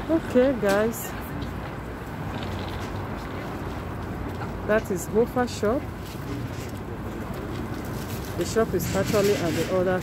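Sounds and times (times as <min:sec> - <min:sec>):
city street background noise: 0:00.0 - 0:10.0.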